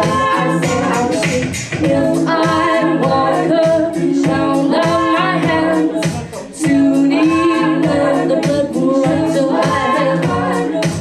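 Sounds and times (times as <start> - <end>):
woman singing layered harmonies: 0.0 - 11.0.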